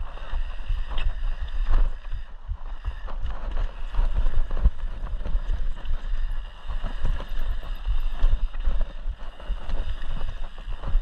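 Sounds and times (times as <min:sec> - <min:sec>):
tyres rumbling on dirt trail: 0:00.0 - 0:11.0
wind on microphone: 0:00.0 - 0:11.0.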